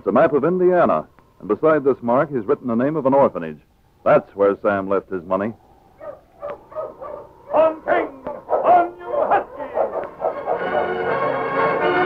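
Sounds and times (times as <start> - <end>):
dog barking: 6.0 - 11.8
music: 9.4 - 12.0.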